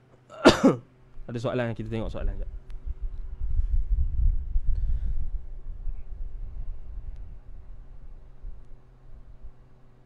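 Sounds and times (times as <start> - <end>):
microphone handling rumble: 1.2 - 9.6.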